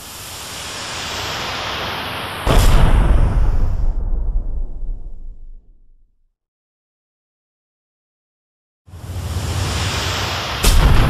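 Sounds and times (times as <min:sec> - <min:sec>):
hissing whoosh: 0:00.0 - 0:05.6, 0:08.9 - 0:11.0.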